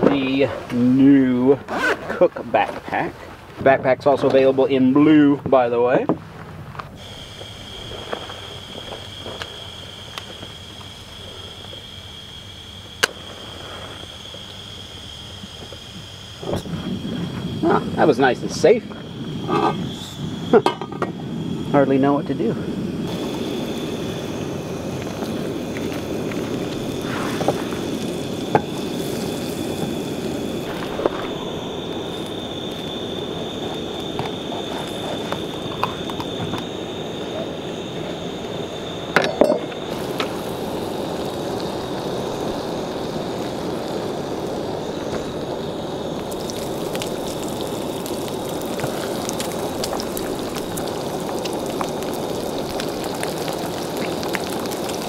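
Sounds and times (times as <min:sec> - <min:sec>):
gas burner hissing: 0:00.0 - 0:55.0
butter sizzling in a frying pan: 0:07.0 - 0:22.3, 0:22.9 - 0:39.1, 0:39.8 - 0:55.0.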